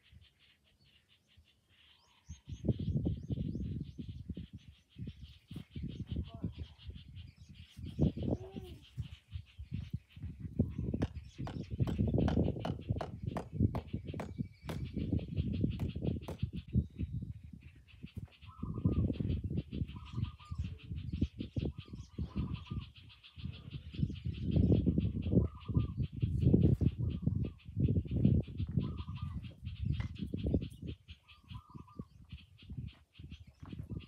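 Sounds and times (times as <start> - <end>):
wind gusts on microphone: 2.0 - 34.0.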